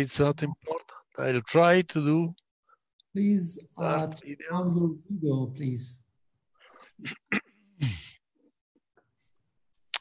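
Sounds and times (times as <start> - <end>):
man clearing his throat: 7.0 - 8.2.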